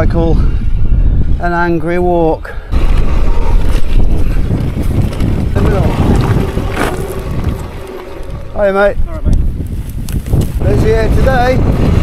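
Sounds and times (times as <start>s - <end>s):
wind buffeting microphone: 0.0s - 12.0s
bike rattling over stones: 2.8s - 8.9s
tyres rumbling on gravel: 2.8s - 8.9s.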